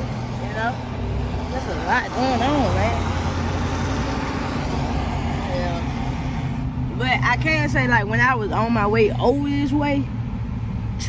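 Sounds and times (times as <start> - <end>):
vehicle engine and tyre rumble: 0.0 - 11.0.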